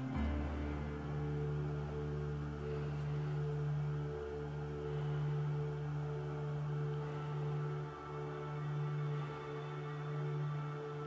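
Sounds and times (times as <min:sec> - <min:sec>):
ambient drone music: 0:00.0 - 0:11.0.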